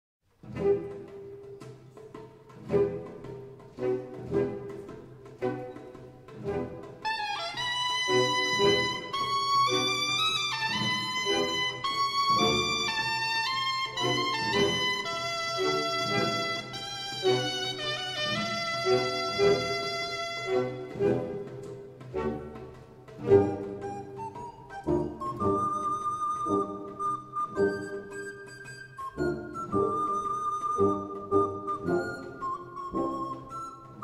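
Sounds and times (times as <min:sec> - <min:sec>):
percussion strikes: 0:00.4 - 0:34.0
wind band playing: 0:06.4 - 0:34.0.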